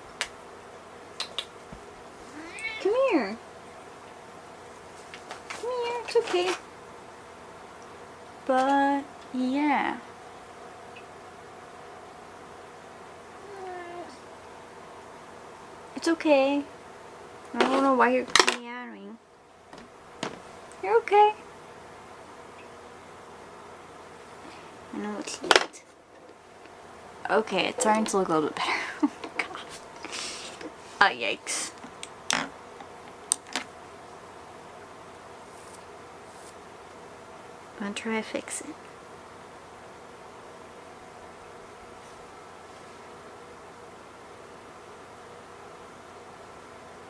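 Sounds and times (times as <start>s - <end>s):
low electrical hum: 0.0s - 47.0s
low hiss of room tone: 0.0s - 47.0s.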